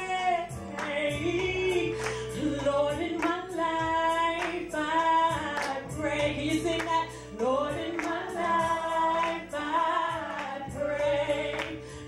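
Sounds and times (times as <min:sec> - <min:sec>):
woman singing into microphone: 0:00.0 - 0:12.0.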